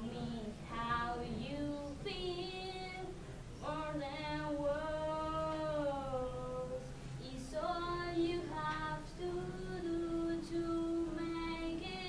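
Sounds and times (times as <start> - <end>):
young woman singing a ballad: 0.0 - 12.0.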